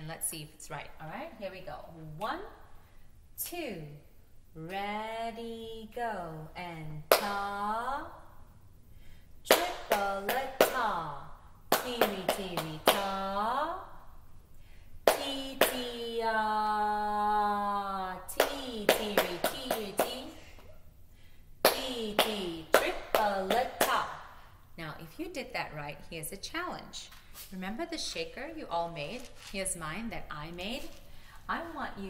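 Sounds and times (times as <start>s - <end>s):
woman chanting rhythm syllables: 0.0s - 2.7s, 3.4s - 8.5s, 9.4s - 14.1s, 15.0s - 20.6s, 21.6s - 26.9s.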